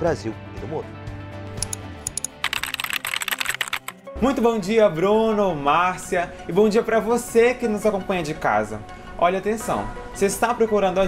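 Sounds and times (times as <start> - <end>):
background music: 0.0 - 11.0
computer keyboard typing: 1.6 - 4.0.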